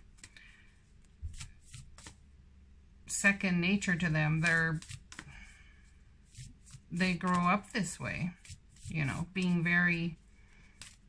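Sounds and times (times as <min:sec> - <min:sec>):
cards being shuffled: 0:00.0 - 0:02.2, 0:04.3 - 0:05.5, 0:06.3 - 0:09.6, 0:10.5 - 0:11.0.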